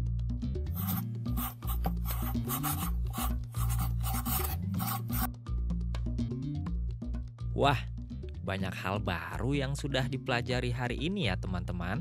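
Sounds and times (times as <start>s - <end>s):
background music: 0.0s - 12.0s
pencil writing on paper: 0.7s - 5.3s.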